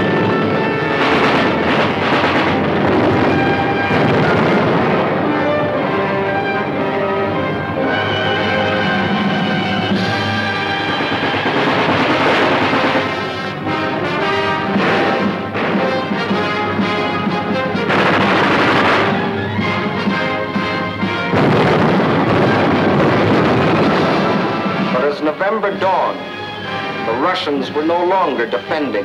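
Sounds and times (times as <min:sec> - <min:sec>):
explosions: 0:00.0 - 0:05.8, 0:14.6 - 0:16.8, 0:17.8 - 0:20.2, 0:21.2 - 0:25.2
orchestral film music: 0:00.0 - 0:29.0
gunfire: 0:00.9 - 0:05.5, 0:10.0 - 0:20.2, 0:21.3 - 0:25.0.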